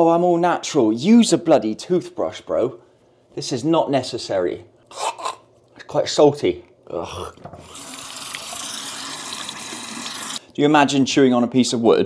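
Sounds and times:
sink tap running: 7.4s - 10.4s.

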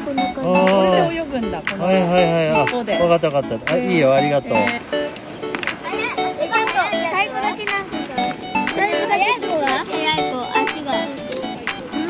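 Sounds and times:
background music with light beat: 0.0s - 12.0s
children's excited voices: 5.8s - 12.0s.

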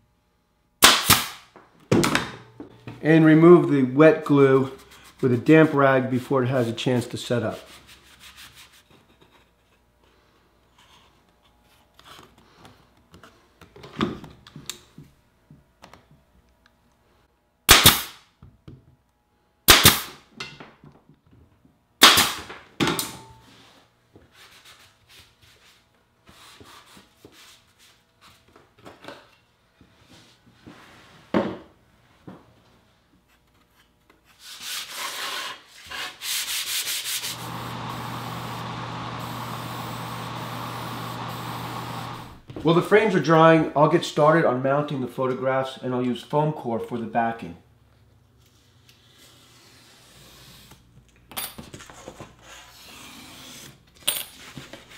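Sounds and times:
pneumatic pin nailer snaps: 0.8s - 1.5s, 17.7s - 18.2s, 19.7s - 20.2s, 22.0s - 22.5s
spray-paint can hissing: 39.2s - 42.4s.

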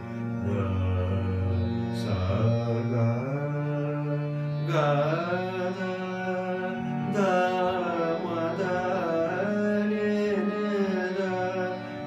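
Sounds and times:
man singing slow melody: 0.4s - 12.0s.

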